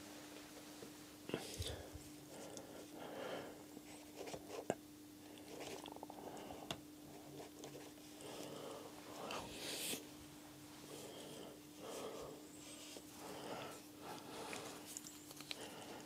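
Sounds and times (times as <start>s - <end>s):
low electrical hum: 0.0s - 16.0s
close-up handling sounds: 11.9s - 16.0s.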